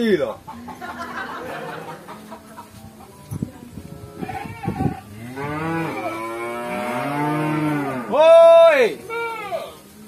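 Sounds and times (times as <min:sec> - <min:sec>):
cow mooing: 0:04.1 - 0:08.2.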